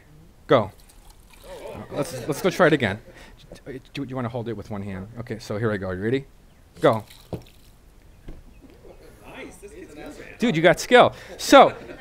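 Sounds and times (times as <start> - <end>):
water pouring into cup: 0.8 - 1.8.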